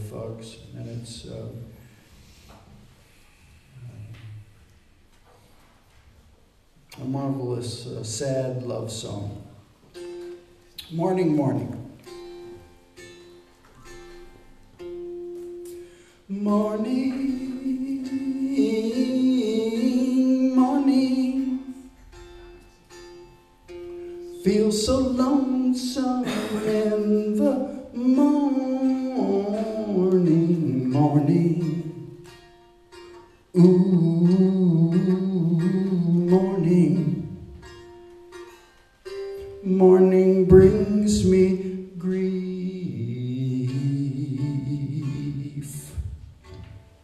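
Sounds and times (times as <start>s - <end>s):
quiet instrumental accompaniment: 9.1s - 47.0s
man singing slow love song: 16.2s - 21.9s, 24.3s - 32.2s, 33.5s - 37.5s, 39.5s - 46.2s.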